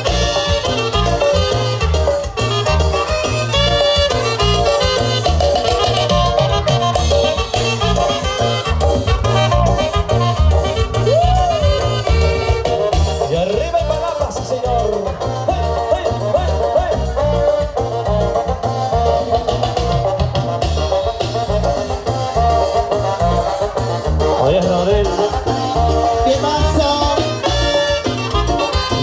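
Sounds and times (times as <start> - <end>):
dance orchestra playing: 0.0 - 29.0.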